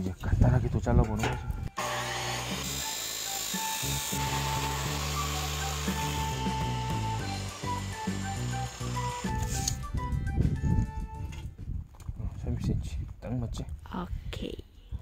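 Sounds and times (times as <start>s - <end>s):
cut-off saw grinding steel pipe: 1.8s - 9.8s
background music with bass: 3.7s - 11.6s.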